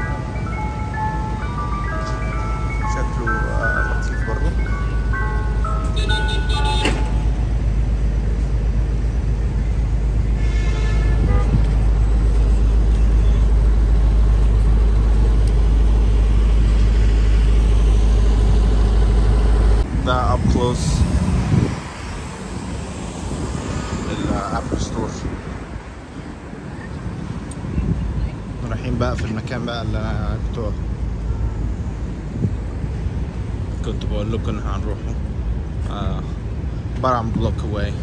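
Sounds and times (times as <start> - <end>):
ice cream truck chime jingle: 0.0 - 7.3
deep rumble of traffic: 0.0 - 38.0
street noise: 0.0 - 38.0.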